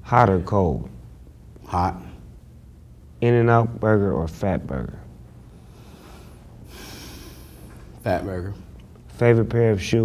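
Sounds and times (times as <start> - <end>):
faint room hum: 0.0 - 10.0
person breathing: 5.5 - 7.9.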